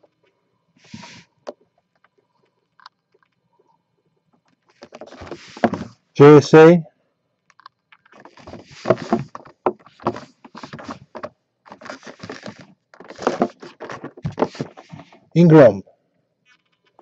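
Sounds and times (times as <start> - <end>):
plastic and cardboard handling: 4.4 - 6.0, 7.9 - 15.4.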